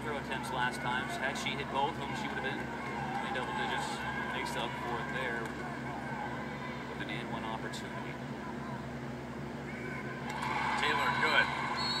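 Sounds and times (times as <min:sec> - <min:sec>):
basketball broadcast on tv: 0:00.0 - 0:12.0
crowd noise: 0:00.0 - 0:12.0.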